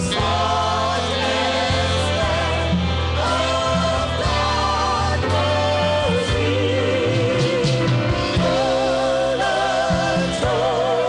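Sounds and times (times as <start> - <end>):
gospel choir singing: 0.0 - 11.0
low instrumental accompaniment: 0.0 - 11.0.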